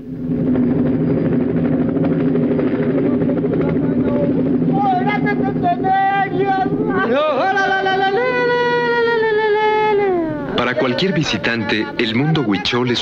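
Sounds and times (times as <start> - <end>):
aircraft engine droning: 0.0 - 13.0
person singing: 5.7 - 12.0.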